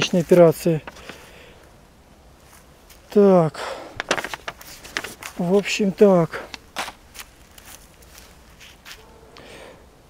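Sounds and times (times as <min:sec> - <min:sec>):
footsteps on grass and leaves: 0:02.4 - 0:03.2, 0:04.0 - 0:09.1.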